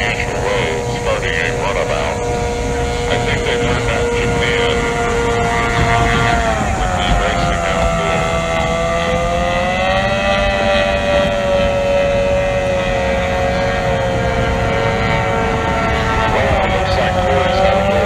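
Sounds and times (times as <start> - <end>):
hydroplane engines whining: 0.0 - 18.0
low rumbling noise: 0.0 - 18.0.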